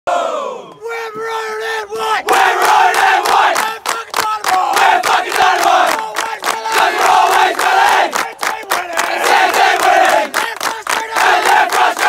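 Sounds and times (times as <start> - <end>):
group chanting loudly: 1.3 - 12.0
regular claps: 2.2 - 12.0.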